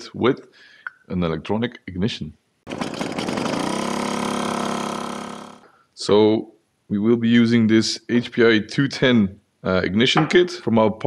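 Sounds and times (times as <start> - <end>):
small engine buzzing at high revs: 2.7 - 5.7.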